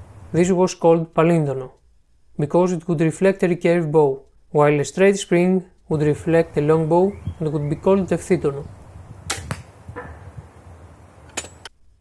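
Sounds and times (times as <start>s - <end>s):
ballista sharp cracks: 9.2s - 10.3s, 11.2s - 11.7s.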